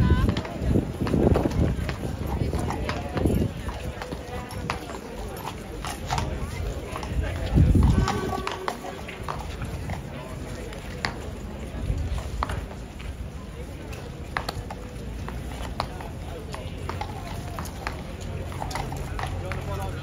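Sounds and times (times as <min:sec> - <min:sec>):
horse hooves on cobbles: 0:00.0 - 0:20.0
murmur of onlookers: 0:00.0 - 0:20.0.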